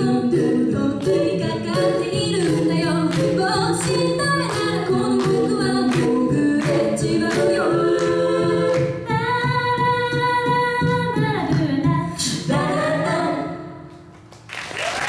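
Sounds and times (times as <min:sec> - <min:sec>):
women singing in harmony: 0:00.0 - 0:14.0.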